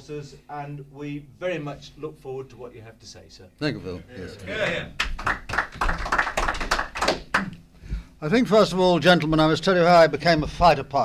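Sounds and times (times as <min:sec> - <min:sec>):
scattered applause: 0:04.8 - 0:07.6.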